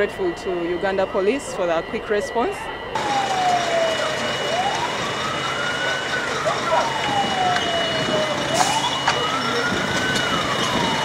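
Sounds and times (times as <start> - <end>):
steady high tone: 0.0 - 9.8
fire engine siren wailing: 0.0 - 11.0.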